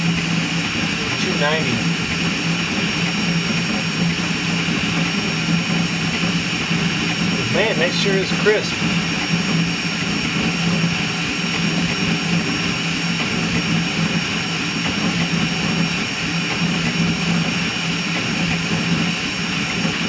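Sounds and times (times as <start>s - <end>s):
cooling fans rushing: 0.0s - 20.0s
steady hum: 0.0s - 20.0s.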